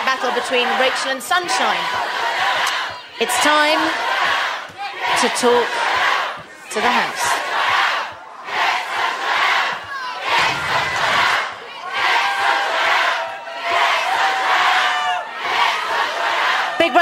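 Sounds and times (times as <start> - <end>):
large crowd shouting: 0.0 - 17.0.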